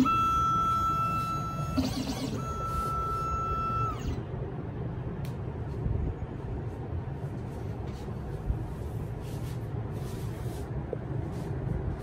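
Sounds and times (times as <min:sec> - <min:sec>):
long high electronic beeps: 0:00.0 - 0:04.2.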